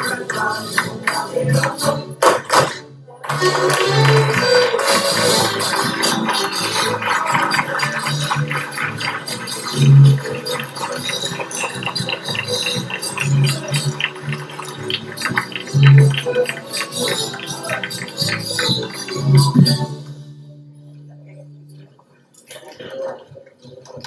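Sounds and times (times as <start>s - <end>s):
strummed guitars: 0.0s - 20.4s
accordion: 3.3s - 20.1s.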